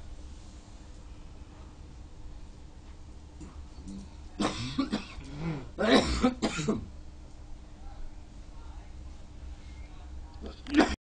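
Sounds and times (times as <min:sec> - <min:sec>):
person coughing: 0:04.4 - 0:06.9, 0:10.7 - 0:11.0.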